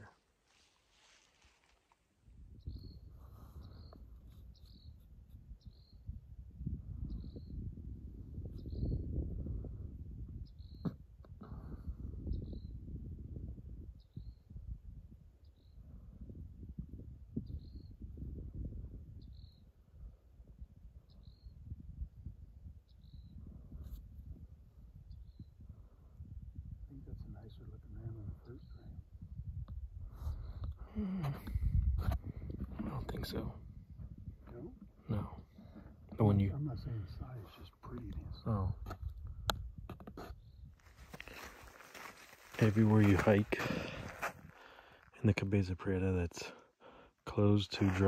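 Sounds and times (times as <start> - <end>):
wind buffeting microphone: 2.2 - 45.0.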